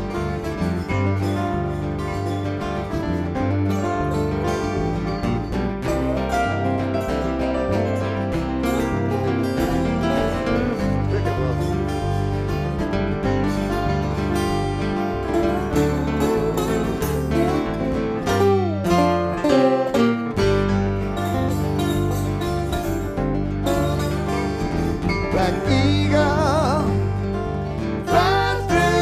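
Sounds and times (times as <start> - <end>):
acoustic guitars strumming: 0.0 - 29.0
slide guitar: 0.0 - 29.0.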